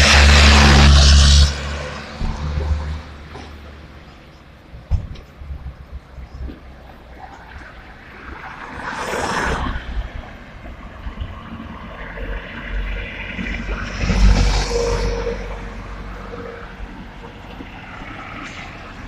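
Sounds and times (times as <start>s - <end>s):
low traffic rumble: 0.0s - 19.0s.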